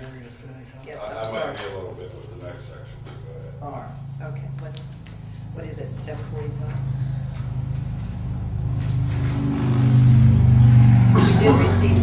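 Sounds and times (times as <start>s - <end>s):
low engine drone: 2.2s - 12.0s.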